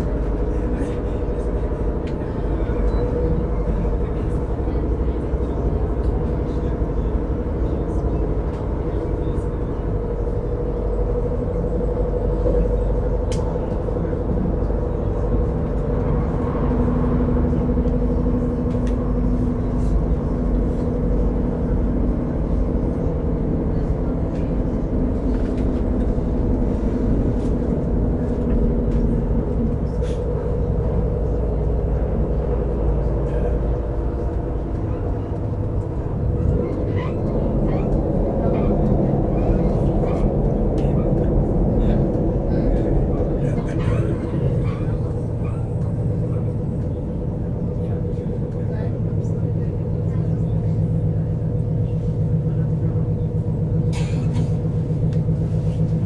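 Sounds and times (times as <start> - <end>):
droning drive hum: 0.0 - 56.0
train wheels rumbling on rails: 0.0 - 56.0.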